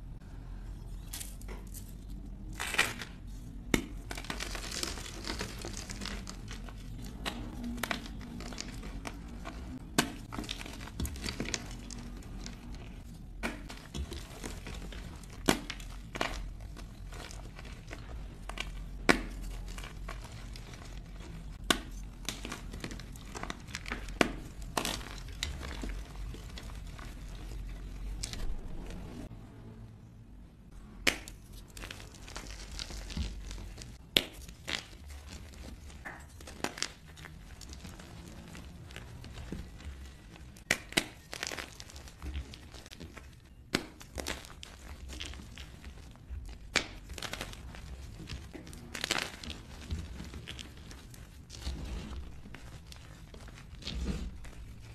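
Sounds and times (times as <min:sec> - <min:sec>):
chalk crunching and crackling: 0:00.8 - 0:29.3, 0:31.0 - 0:54.9.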